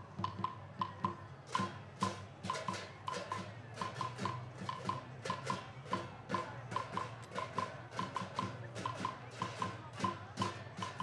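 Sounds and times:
drum beats: 0:00.0 - 0:11.0.

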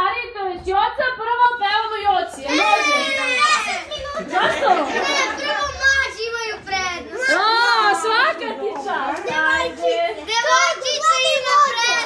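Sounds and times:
children talking and calling out: 0:01.2 - 0:12.0.

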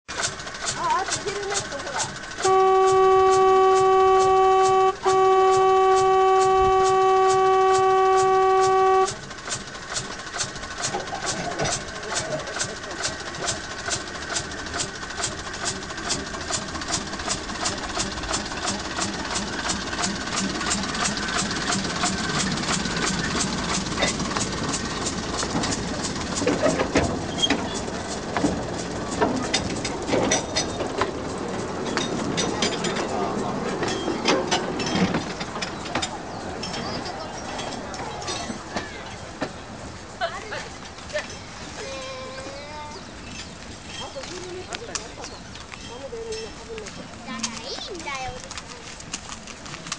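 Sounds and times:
locomotive engine knocking: 0:00.1 - 0:41.6
diesel locomotive horn blast: 0:02.3 - 0:09.4.

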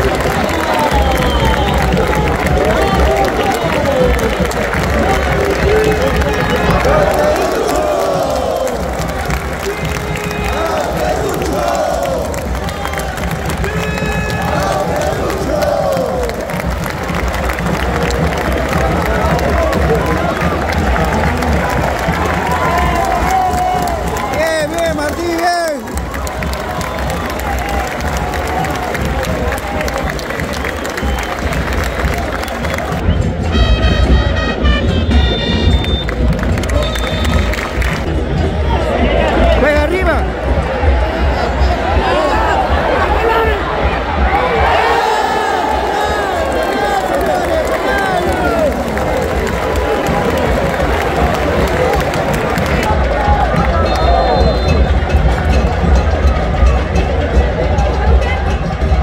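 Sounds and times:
crowd cheering and chanting: 0:00.0 - 0:59.0.

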